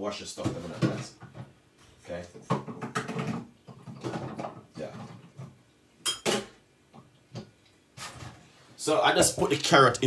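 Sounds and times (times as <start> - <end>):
man speaking: 8.8 - 10.0.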